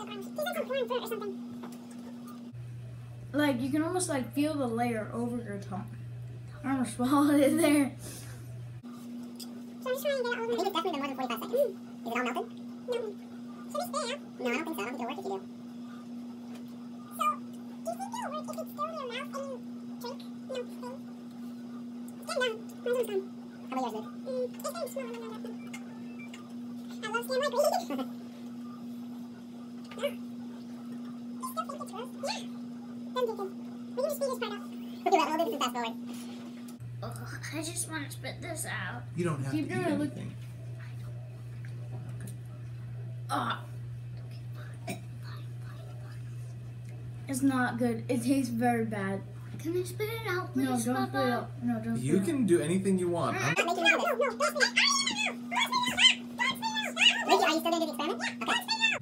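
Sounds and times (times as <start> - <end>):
steady low hum: 0.0 - 59.0
boys whining and protesting: 53.4 - 59.0.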